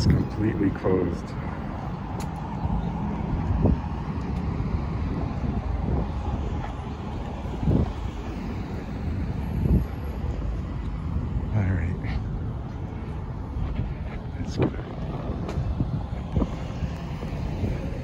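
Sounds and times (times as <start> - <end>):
light city traffic: 0.0 - 18.0
wind rumbling on microphone: 0.0 - 18.0.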